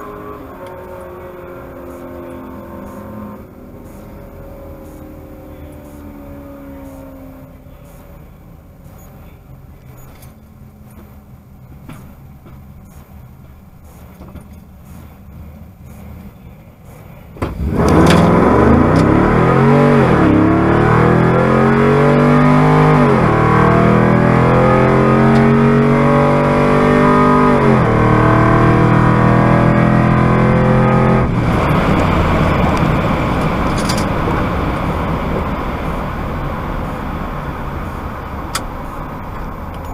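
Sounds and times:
engine revving at full throttle: 0:00.0 - 0:07.9, 0:17.4 - 0:39.1
wind and tyre noise: 0:00.0 - 0:39.9.

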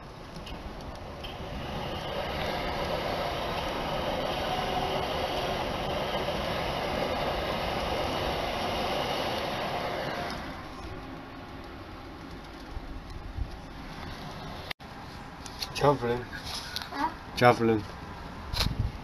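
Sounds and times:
train wheels rumbling on track: 0:00.0 - 0:10.7.

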